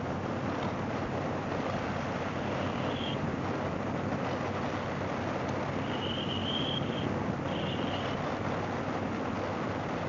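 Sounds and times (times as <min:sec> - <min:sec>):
motorcycle engine cruising: 0:00.0 - 0:10.0
wind and road noise: 0:00.0 - 0:10.0.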